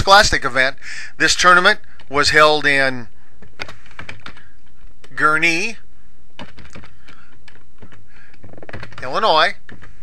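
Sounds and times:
steady background hiss: 0:00.0 - 0:10.0
keyboard typing: 0:03.4 - 0:05.2, 0:06.4 - 0:10.0.

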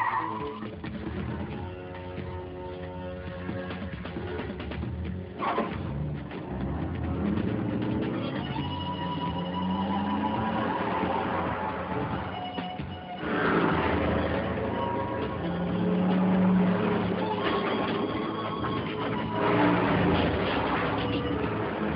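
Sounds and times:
music: 0:00.0 - 0:21.9
vehicle engines revving: 0:03.3 - 0:21.9.

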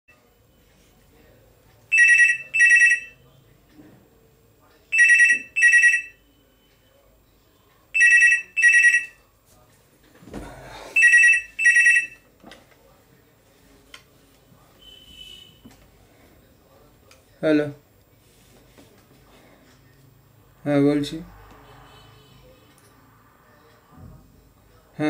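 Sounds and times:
telephone ringing: 0:01.9 - 0:03.2, 0:04.9 - 0:06.4, 0:08.0 - 0:09.2, 0:11.0 - 0:12.3.

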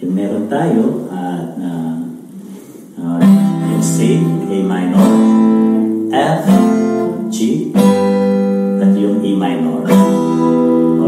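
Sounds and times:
acoustic guitar chord ringing: 0:02.4 - 0:11.0.

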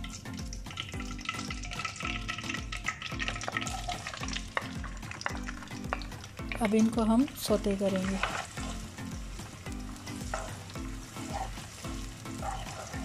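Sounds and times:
background music beat: 0:00.0 - 0:13.0
onions sizzling in hot ghee: 0:00.0 - 0:13.0.

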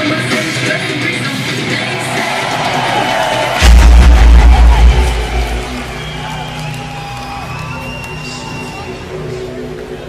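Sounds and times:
rock music: 0:00.0 - 0:08.0
loud deep rumble: 0:03.6 - 0:06.4.

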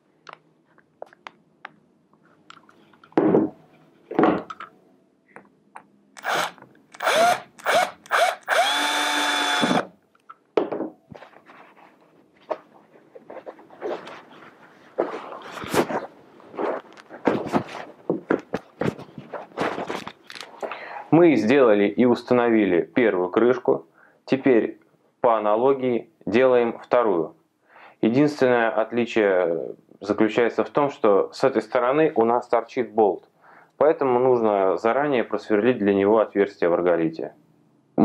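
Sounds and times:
cordless drill driving screws: 0:06.2 - 0:09.9
hands rubbing fabric: 0:11.2 - 0:18.0.

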